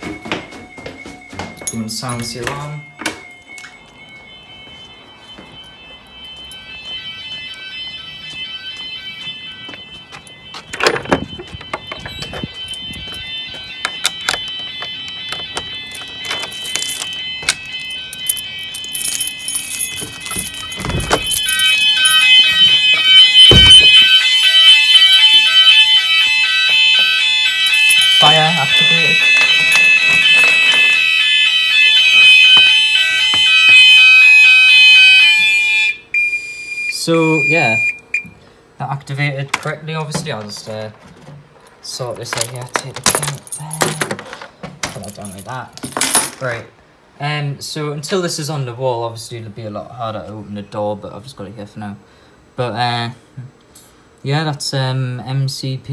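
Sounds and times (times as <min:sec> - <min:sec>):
steady alarm tone: 0:00.0 - 0:38.4
fire alarm sounders: 0:00.0 - 0:40.8.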